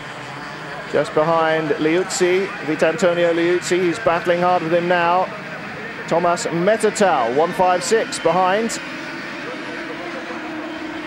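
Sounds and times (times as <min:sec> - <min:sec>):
racing karts engines: 0:00.0 - 0:11.0.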